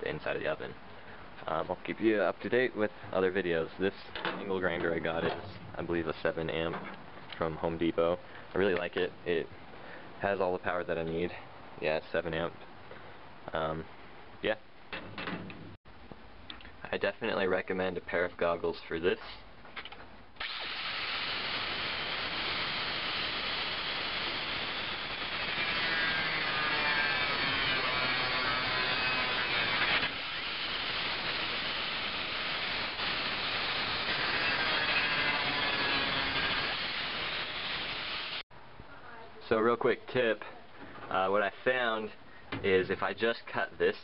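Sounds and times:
angle grinder cutting steel: 0:20.4 - 0:38.4.

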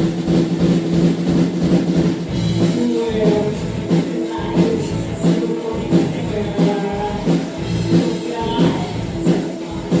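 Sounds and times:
bass guitar: 0:00.0 - 0:10.0
distorted electric guitars: 0:00.0 - 0:10.0
drums: 0:00.0 - 0:10.0.

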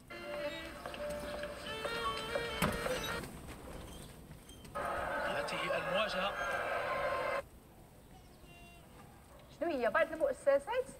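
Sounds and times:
commentary: 0:04.8 - 0:07.4
crowd noise: 0:04.8 - 0:07.4.

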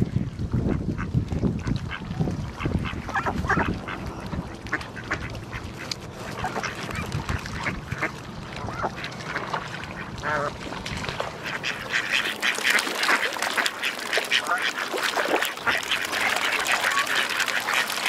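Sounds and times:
waterfowl calling: 0:01.9 - 0:18.0.

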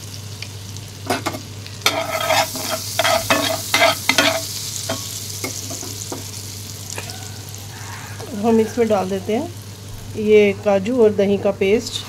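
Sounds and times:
oil sizzling in a pan: 0:00.0 - 0:10.9.

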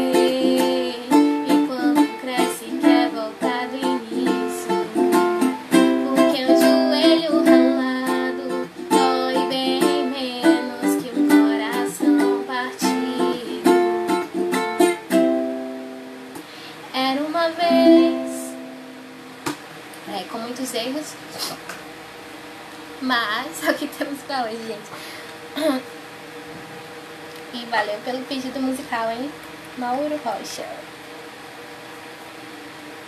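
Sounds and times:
woman singing: 0:00.0 - 0:14.2, 0:16.9 - 0:18.7
ukulele strumming chords: 0:00.0 - 0:16.4, 0:17.4 - 0:19.6.

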